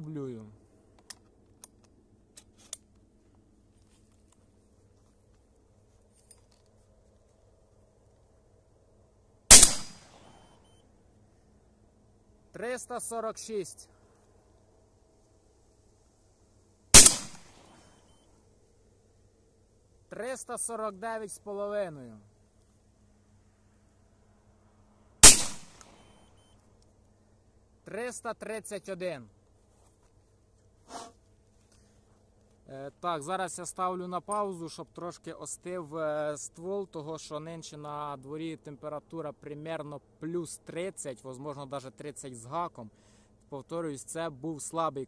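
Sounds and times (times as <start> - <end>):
shotgun shot: 9.5 - 10.4, 16.9 - 17.8, 25.2 - 26.1.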